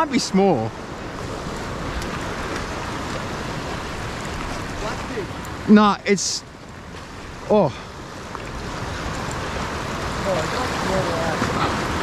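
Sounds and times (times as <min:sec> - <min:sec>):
surf washing over rocks: 0:00.0 - 0:12.0.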